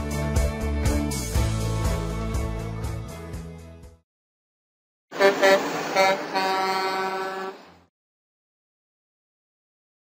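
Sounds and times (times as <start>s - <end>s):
truck horn honking: 5.1s - 7.8s.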